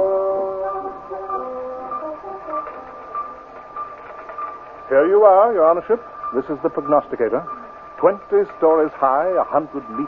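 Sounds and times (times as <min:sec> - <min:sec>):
rhythmic electronic pulses: 0:00.0 - 0:10.0
steady high hum: 0:00.0 - 0:10.0.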